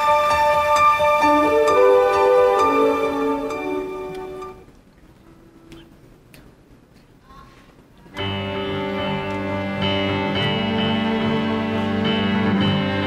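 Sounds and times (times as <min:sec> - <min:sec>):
string orchestra: 0:00.0 - 0:04.7, 0:08.2 - 0:13.0
keyboard playing: 0:00.0 - 0:05.8, 0:08.2 - 0:13.0
faint clicks: 0:04.1 - 0:08.3.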